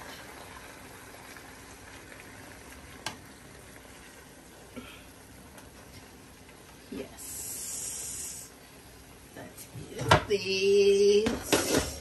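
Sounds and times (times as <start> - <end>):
frying pan hissing: 2.0 - 9.7, 10.3 - 12.0.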